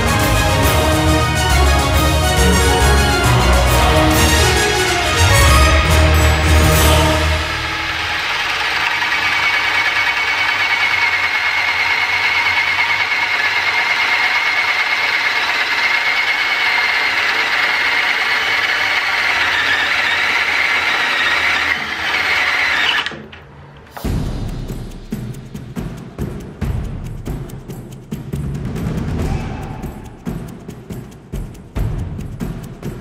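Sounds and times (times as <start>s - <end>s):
cordless drill boring wood: 6.8s - 23.3s.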